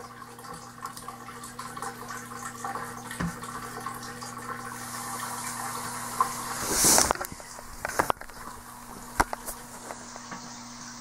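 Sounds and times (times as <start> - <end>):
low electrical hum: 0.0 - 11.0
hiss: 4.8 - 7.3.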